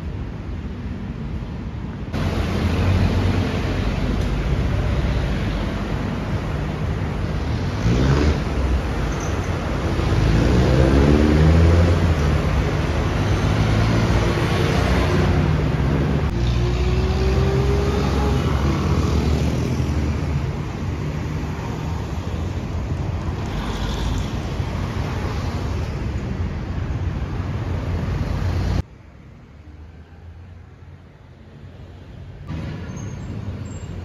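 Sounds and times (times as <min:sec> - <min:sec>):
tyre noise on road: 0:00.0 - 0:28.9
car engines passing: 0:02.1 - 0:28.9.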